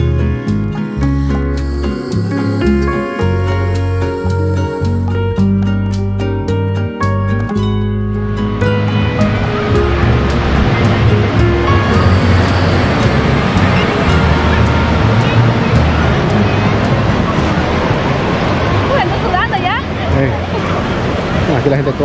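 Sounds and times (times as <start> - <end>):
plucked string background music: 0.0 - 19.7
higher voices calling out: 11.6 - 16.8.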